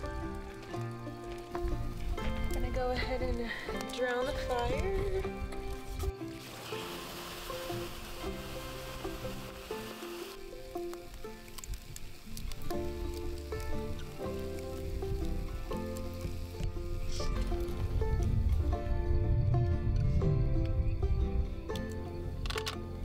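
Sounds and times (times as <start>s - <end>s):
embers hissing and sizzling: 0.0s - 19.2s
background music: 0.0s - 23.0s.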